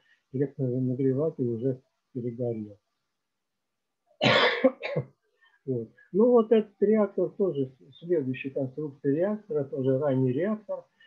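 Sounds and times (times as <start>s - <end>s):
man coughing: 4.2s - 5.0s.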